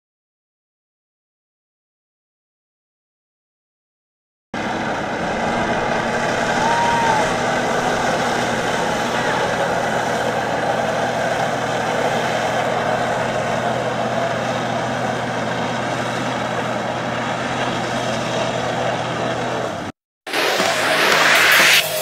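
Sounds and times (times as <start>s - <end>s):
water rushing from jets: 4.6s - 19.9s
watercraft engine running: 4.6s - 21.3s.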